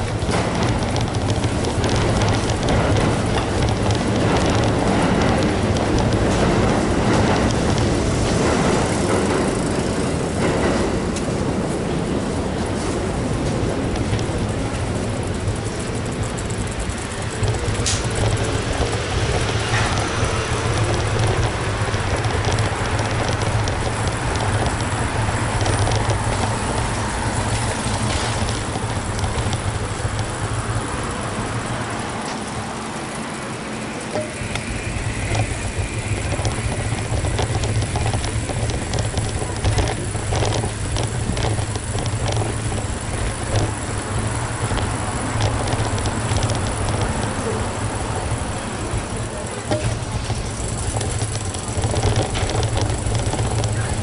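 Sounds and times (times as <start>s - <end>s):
small clicks and knocks: 0.0s - 11.3s, 13.4s - 32.6s, 34.1s - 48.4s, 49.0s - 54.0s
road traffic rumble: 0.0s - 54.0s.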